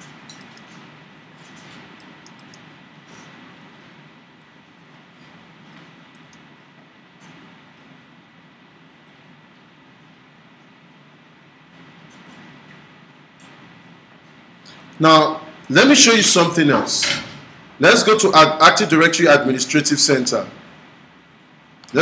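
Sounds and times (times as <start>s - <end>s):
low hum and hiss: 0.0s - 22.0s.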